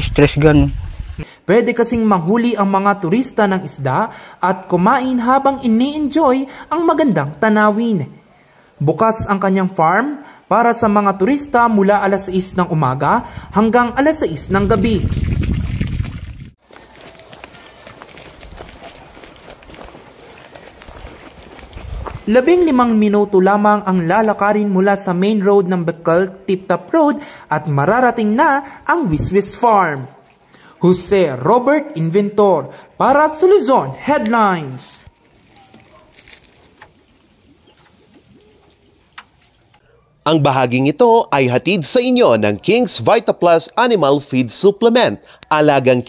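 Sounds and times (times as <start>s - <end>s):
water running into pond: 14.6s - 17.0s, 35.1s - 39.8s
footsteps on path: 15.8s - 23.1s, 35.0s - 39.7s
chickens calling: 35.1s - 39.8s.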